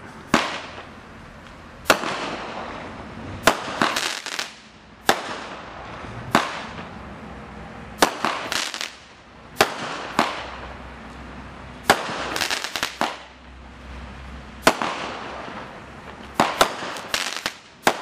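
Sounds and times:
steady firework hiss: 0:00.0 - 0:06.9, 0:08.0 - 0:13.4, 0:14.6 - 0:18.0
firework reports: 0:00.0 - 0:07.0, 0:08.0 - 0:10.8, 0:11.4 - 0:13.9, 0:14.6 - 0:18.0
crackling pops: 0:16.0 - 0:18.0.

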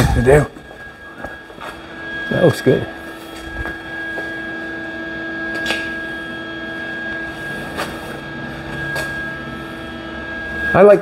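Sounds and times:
machine hum with whine: 0:00.0 - 0:11.0.

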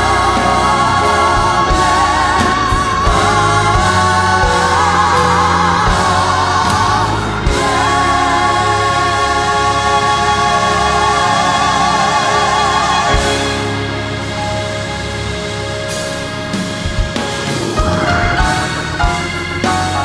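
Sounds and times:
woman singing gospel with vibrato: 0:00.0 - 0:13.8
backing instruments: 0:00.0 - 0:20.0
vocal ensemble singing: 0:00.0 - 0:20.0.

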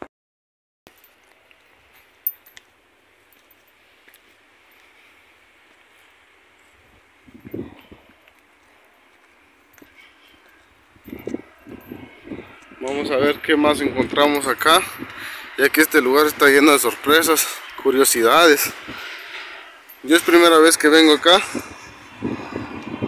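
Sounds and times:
muffled footsteps on stone steps: 0:00.9 - 0:13.1
quiet outdoor hiss: 0:00.9 - 0:21.4.

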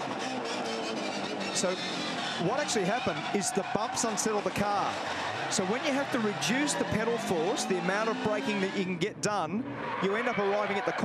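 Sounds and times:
race car engine with gear changes: 0:00.0 - 0:11.0.

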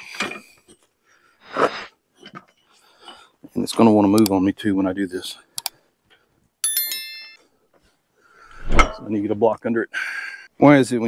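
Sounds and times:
bright bell chime: 0:06.6 - 0:07.5.

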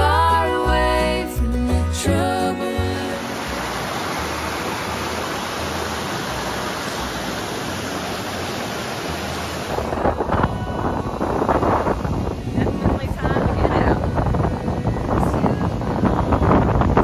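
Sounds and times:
water rushing over rocks: 0:02.0 - 0:17.0
wind buffeting microphone: 0:09.6 - 0:17.0.

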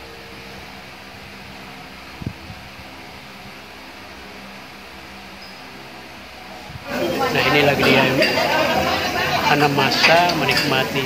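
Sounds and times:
mechanical hum with hiss: 0:00.0 - 0:11.0.

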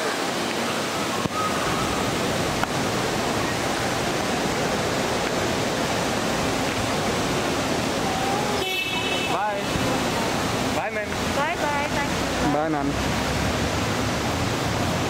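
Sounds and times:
steady rushing noise: 0:00.0 - 0:15.0.

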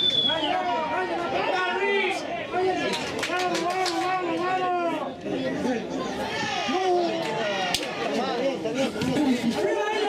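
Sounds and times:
people talking and shouting: 0:00.0 - 0:10.0.

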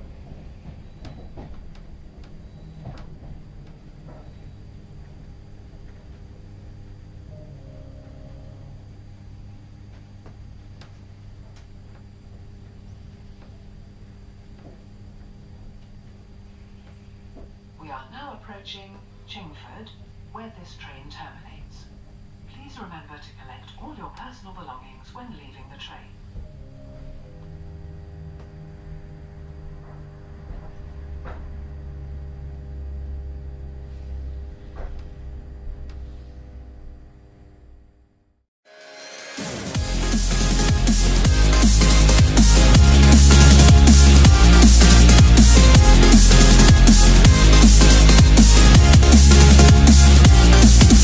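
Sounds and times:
train running gear rumble: 0:00.0 - 0:06.5
electrical hum: 0:00.0 - 0:38.5, 0:39.5 - 0:51.0.

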